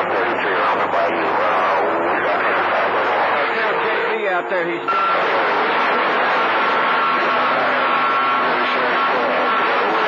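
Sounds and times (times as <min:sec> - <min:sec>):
garbled voice on radio: 0:00.0 - 0:10.0
radio static hiss: 0:00.0 - 0:10.0.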